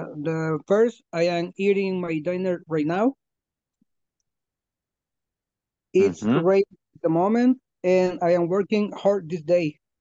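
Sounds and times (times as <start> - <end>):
man's voice over video call: 6.0 - 10.0.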